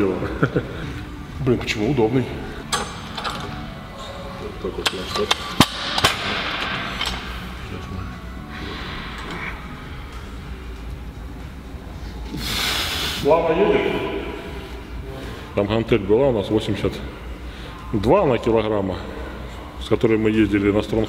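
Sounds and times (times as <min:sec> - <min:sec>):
gym background noise: 0:00.9 - 0:21.0.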